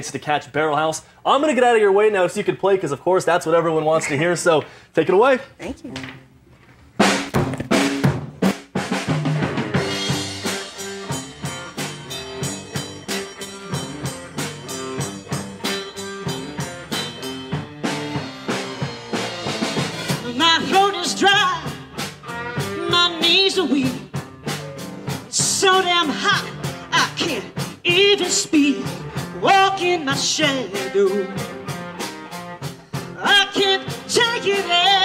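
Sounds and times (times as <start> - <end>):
bass guitar: 7.0 - 35.0
drum kit: 7.0 - 35.0
electric guitars: 9.3 - 25.4, 28.7 - 35.0
woman singing lead vocal: 20.2 - 21.8, 22.8 - 24.1, 25.3 - 31.4, 33.2 - 35.0.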